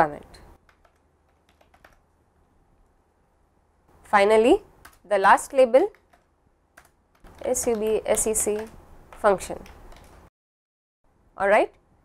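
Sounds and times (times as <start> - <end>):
soft keyboard typing: 0.6 - 2.1, 4.2 - 10.3.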